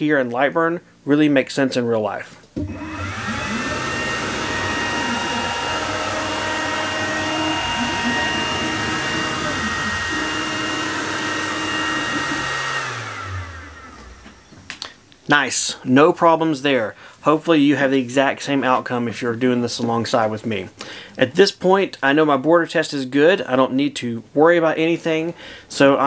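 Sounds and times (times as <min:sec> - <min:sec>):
stepper motors whining: 0:02.6 - 0:14.7
fan hiss: 0:02.6 - 0:18.3.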